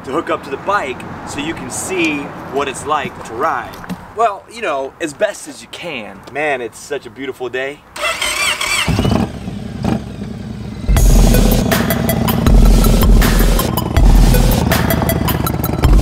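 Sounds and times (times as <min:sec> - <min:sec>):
motorcycle engine running: 0:08.8 - 0:16.0
electronic music with heavy bass: 0:10.9 - 0:16.0.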